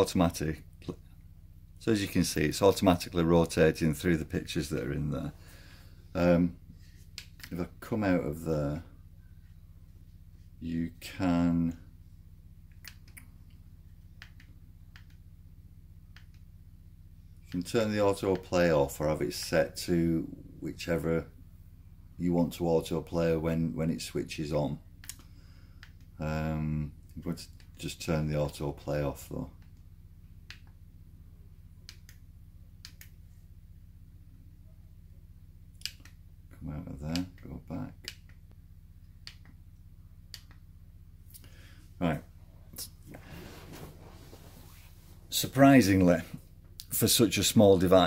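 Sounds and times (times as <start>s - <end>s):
low electrical hum: 0.0s - 48.0s.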